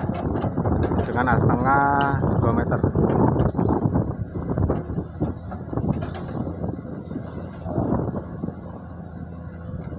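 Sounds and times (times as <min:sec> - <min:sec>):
excavator diesel engine rumble: 0:00.0 - 0:09.9.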